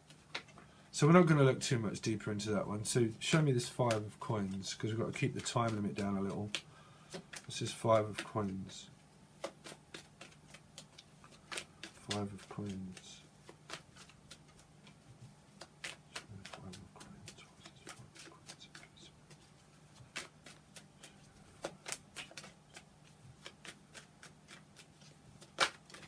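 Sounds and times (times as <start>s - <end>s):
cards being shuffled: 0.0s - 26.0s.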